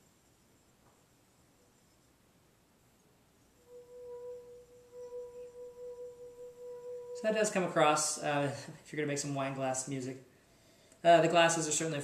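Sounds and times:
wine glass rim singing tone: 3.4s - 8.4s.

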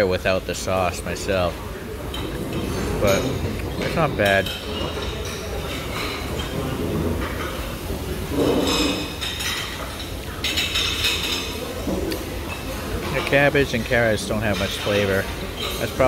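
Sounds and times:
dishes and cutlery clinking: 0.3s - 16.0s.

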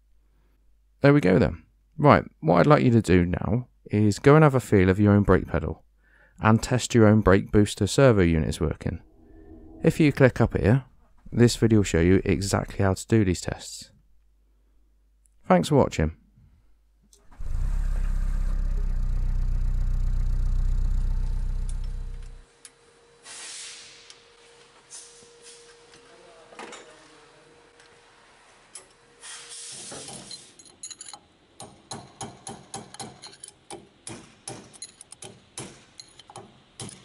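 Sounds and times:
engine rumbling: 8.8s - 12.8s, 17.3s - 22.4s
metallic clicks and clinks: 30.2s - 31.3s, 32.9s - 33.6s, 34.7s - 35.3s, 35.9s - 37.0s.

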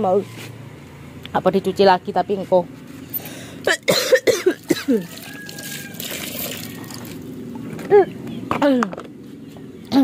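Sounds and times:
woman coughing: 3.7s - 5.1s.

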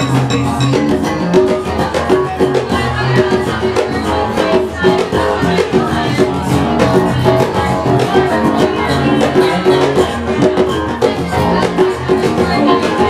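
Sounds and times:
electric bass line: 0.0s - 13.0s
keyboards: 0.0s - 13.0s
percussion: 0.0s - 13.0s.

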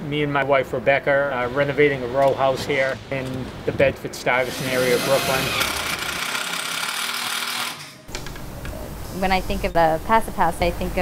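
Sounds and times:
impact driver driving screw: 4.5s - 8.0s.

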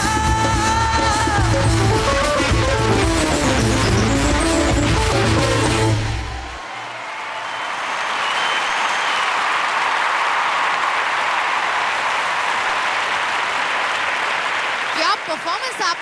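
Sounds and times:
audience applauding: 1.5s - 16.0s.

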